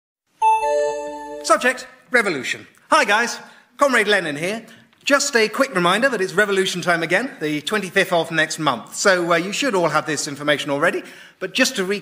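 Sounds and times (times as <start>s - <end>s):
two-note ding-dong chime: 0.4s - 1.5s
man talking: 1.4s - 12.0s.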